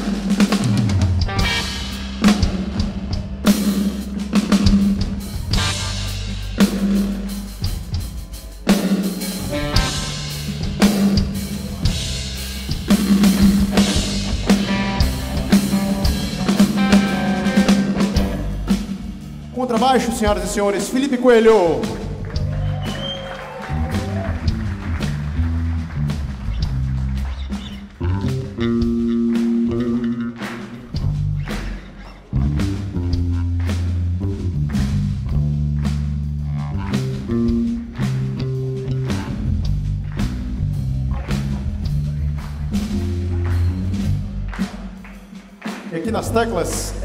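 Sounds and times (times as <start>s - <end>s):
electric bass solo: 0.0s - 8.3s, 9.3s - 20.1s, 21.7s - 44.7s
drum kit beat: 0.0s - 47.0s.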